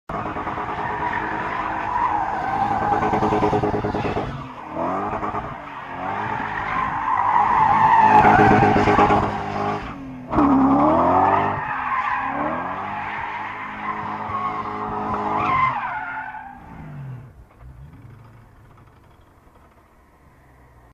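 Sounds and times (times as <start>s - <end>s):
car engine revving: 0.1s - 15.8s.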